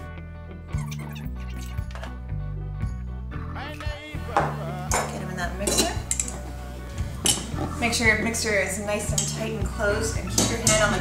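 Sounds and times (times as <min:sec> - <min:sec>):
music with steady bass line: 0:00.0 - 0:11.0.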